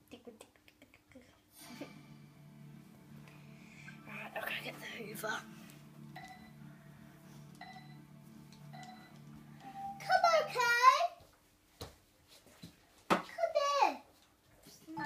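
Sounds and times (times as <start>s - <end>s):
chiming notes: 1.6s - 10.7s
soft background music: 1.6s - 11.2s
child's loud wordless voice: 10.0s - 11.2s, 13.3s - 14.1s.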